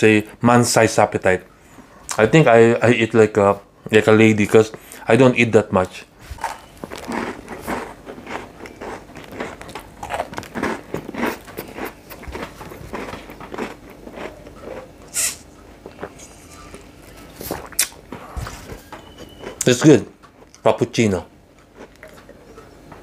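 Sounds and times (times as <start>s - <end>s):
chewing crunchy rusk: 6.3s - 20.7s, 21.4s - 22.9s.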